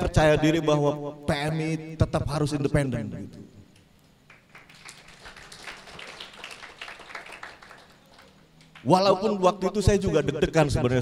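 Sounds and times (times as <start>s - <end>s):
audience clapping: 4.2s - 9.0s.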